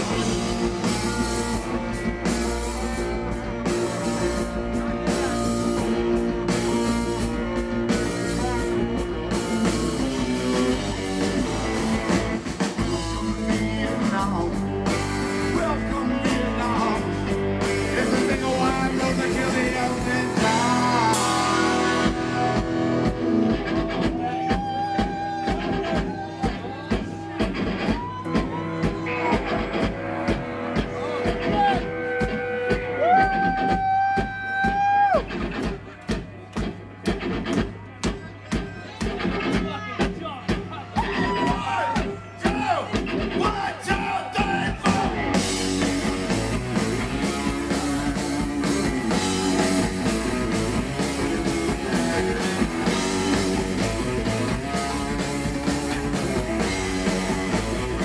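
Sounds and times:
distorted electric guitars: 0.0 - 42.2, 42.9 - 58.0
bass guitar: 0.0 - 58.0
drum kit: 0.0 - 58.0
person singing: 12.8 - 30.0, 41.2 - 45.5.

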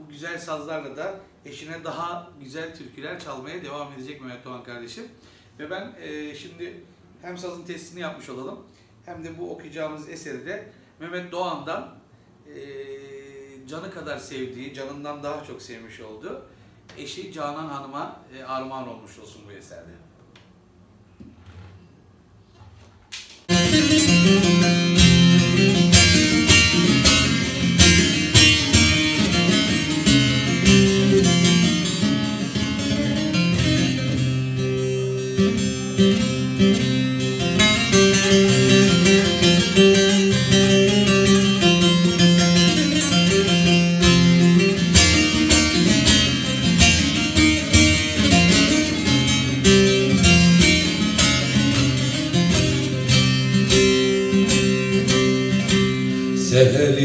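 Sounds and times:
long-necked lute strummed rapidly: 23.5 - 57.0.

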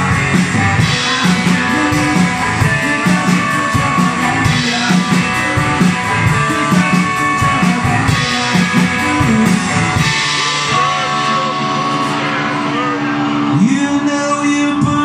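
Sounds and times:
drum kit playing: 0.0 - 15.0
electric guitar riff: 0.0 - 15.0.

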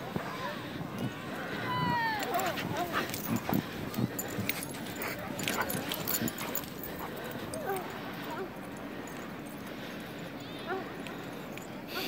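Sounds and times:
paws running in snow: 1.5 - 9.9
dogs yipping and whining: 2.0 - 8.4.

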